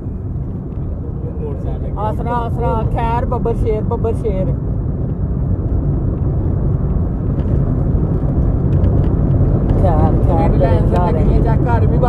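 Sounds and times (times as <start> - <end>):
bus engine rumble: 0.0 - 12.0
road noise: 0.0 - 12.0.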